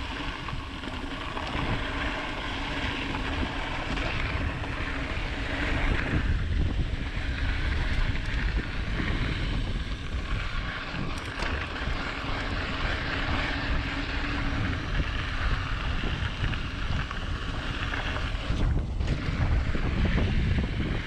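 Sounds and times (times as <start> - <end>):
bike tyres rolling on dirt: 0.0 - 21.0
wind buffeting microphone: 0.0 - 21.0.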